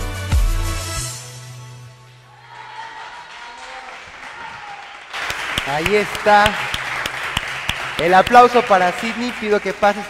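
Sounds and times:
audience clapping and cheering: 0:02.0 - 0:10.0.

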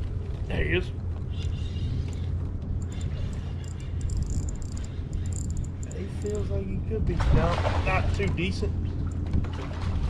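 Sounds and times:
fishing reel clicking: 0:02.8 - 0:06.3.

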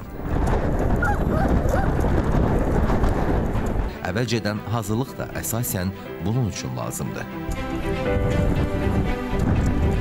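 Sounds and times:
wind buffeting microphone: 0:00.0 - 0:05.2, 0:07.4 - 0:10.0.

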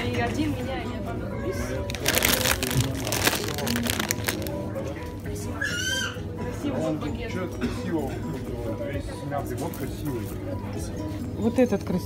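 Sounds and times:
music playing: 0:00.0 - 0:12.0
plastic packets crinkling: 0:01.9 - 0:04.7.

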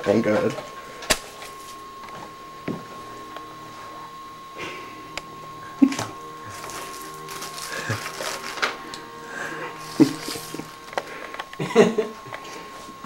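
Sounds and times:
steady thin high tone: 0:00.0 - 0:13.0
rustling handling sounds: 0:05.9 - 0:11.6.

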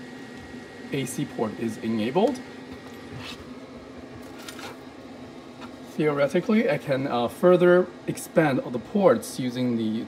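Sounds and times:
cooling fan humming: 0:00.0 - 0:10.0.

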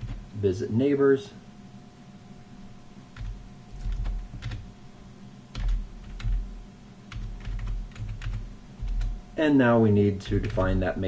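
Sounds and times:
typing on computer keyboard: 0:03.2 - 0:04.7, 0:05.6 - 0:06.4, 0:07.1 - 0:09.1, 0:10.2 - 0:10.8.

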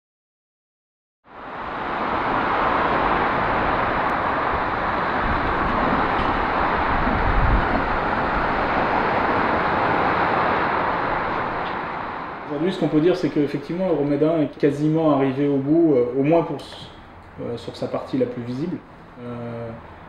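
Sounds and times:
motorway traffic rushing: 0:01.3 - 0:20.0
low rumble: 0:01.9 - 0:14.3.

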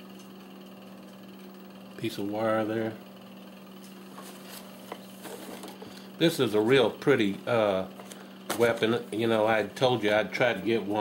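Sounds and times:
faint steady hum: 0:00.0 - 0:11.0
papers rustling: 0:04.2 - 0:05.8.

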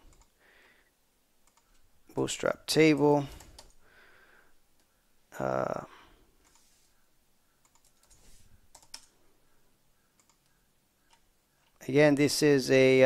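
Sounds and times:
keyboard and mouse clicks: 0:00.0 - 0:00.4, 0:01.4 - 0:01.8, 0:03.3 - 0:03.8, 0:06.4 - 0:06.7, 0:07.6 - 0:09.2, 0:10.1 - 0:11.8.

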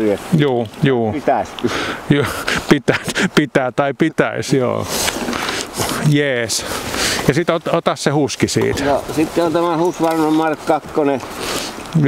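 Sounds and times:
noisy hiss: 0:00.0 - 0:12.0.

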